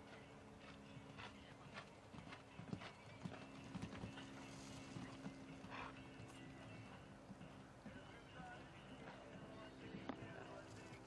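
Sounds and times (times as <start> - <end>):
hoofbeats on sand: 0.0 - 10.9
low hum: 0.0 - 11.0.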